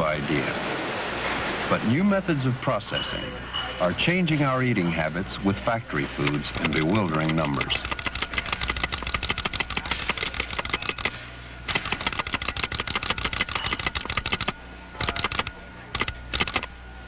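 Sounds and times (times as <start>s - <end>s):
steady low hum: 0.0s - 17.0s
rapid mechanical clacking: 6.3s - 16.7s.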